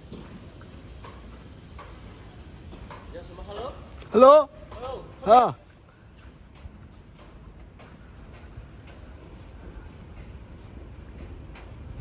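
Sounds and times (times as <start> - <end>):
footsteps on wet concrete: 0.0 - 12.0.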